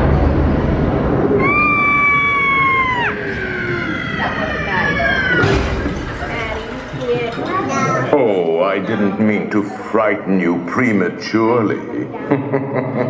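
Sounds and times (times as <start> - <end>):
low thunder rumble: 0.0 - 8.2
crash: 0.0 - 8.5
high scream: 1.3 - 6.1
falling cry: 1.4 - 6.3.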